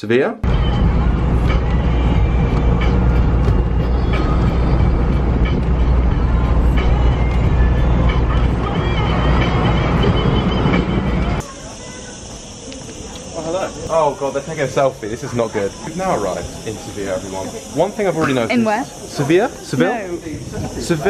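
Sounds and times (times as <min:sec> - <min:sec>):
wind buffeting: 0:00.4 - 0:11.4, 0:12.4 - 0:17.8, 0:18.9 - 0:21.0
road noise with low rumble: 0:00.4 - 0:21.0.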